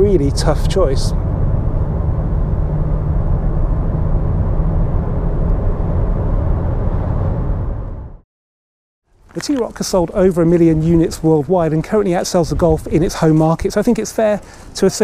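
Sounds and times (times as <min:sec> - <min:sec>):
car interior road and engine noise: 0:00.0 - 0:08.2.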